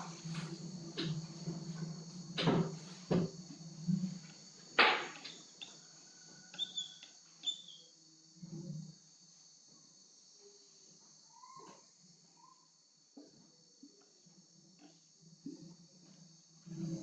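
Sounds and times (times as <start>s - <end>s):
marker squeaking on whiteboard: 6.6s - 7.9s.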